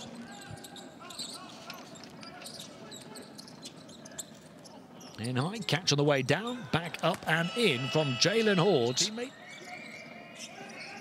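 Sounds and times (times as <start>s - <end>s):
faint shouts and chatter: 6.6s - 11.0s.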